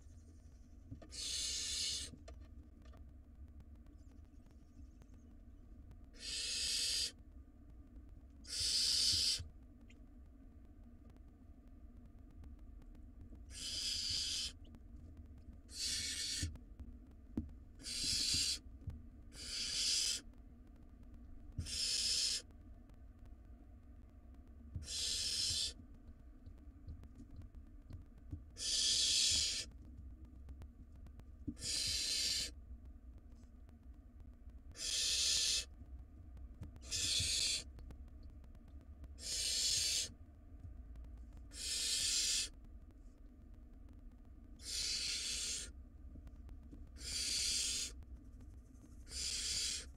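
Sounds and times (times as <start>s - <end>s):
owl chicks hissing: 1.1s - 2.1s, 6.2s - 7.2s, 8.4s - 9.4s, 13.5s - 14.6s, 15.7s - 16.5s, 17.8s - 18.6s, 19.3s - 20.2s, 21.6s - 22.4s, 24.8s - 25.8s, 28.6s - 29.7s, 31.5s - 32.5s, 34.8s - 35.7s, 36.8s - 37.7s, 39.2s - 40.1s, 41.5s - 42.6s, 44.6s - 45.7s, 47.0s - 48.0s, 49.0s - 49.9s.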